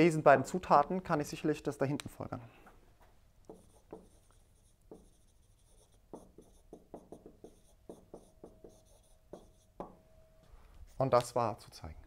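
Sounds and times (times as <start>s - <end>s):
marker writing on whiteboard: 3.4s - 10.0s.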